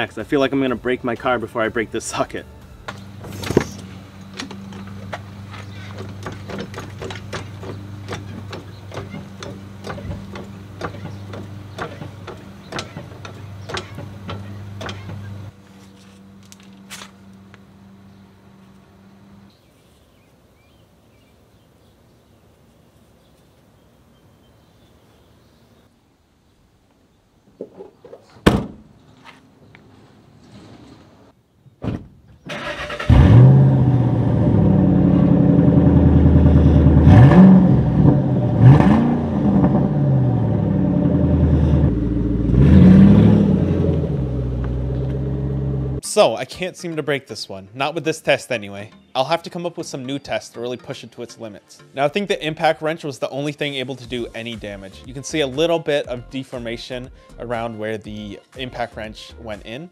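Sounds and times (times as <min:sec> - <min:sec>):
car engine revving: 0:32.6 - 0:46.0.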